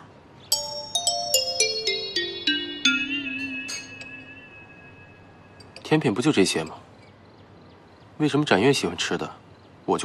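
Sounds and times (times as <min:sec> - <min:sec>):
lower descending music line: 0:00.5 - 0:05.6
bell-like descending notes: 0:00.5 - 0:05.7.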